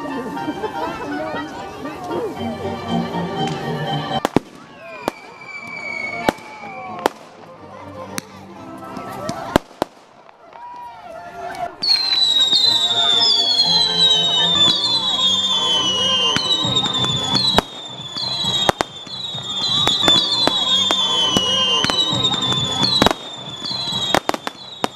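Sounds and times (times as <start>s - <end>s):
firework bangs and crackles: 3.4s - 24.9s
whistling fireworks: 4.2s - 7.3s, 11.7s - 24.9s.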